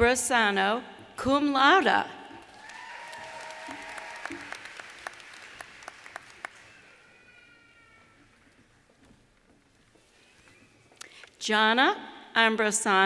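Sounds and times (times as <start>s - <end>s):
audience applause: 2.4s - 7.2s
high call from crowd: 2.6s - 5.0s.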